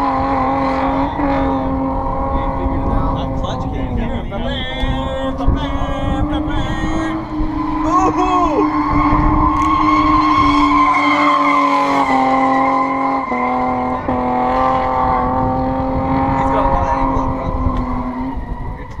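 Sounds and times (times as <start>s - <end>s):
car engine running: 0.0s - 19.0s
road noise rumble: 0.0s - 19.0s.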